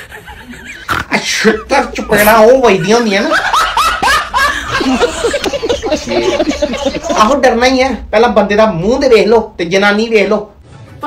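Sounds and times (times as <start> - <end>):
person laughing: 0.0 - 7.4.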